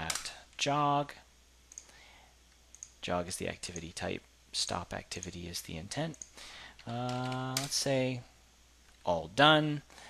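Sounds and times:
faint computer mouse clicks: 1.7s - 3.0s.

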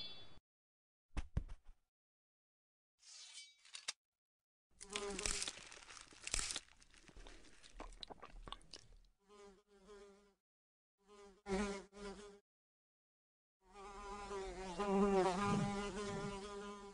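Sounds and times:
housefly buzzing: 4.8s - 5.5s, 9.3s - 10.4s, 11.0s - 12.4s, 13.7s - 16.9s
crunching crackling noises: 4.8s - 9.1s.

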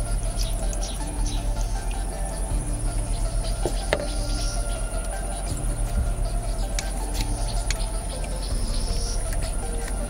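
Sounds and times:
high-pitched whine: 0.0s - 10.0s
low hum: 0.0s - 10.0s.

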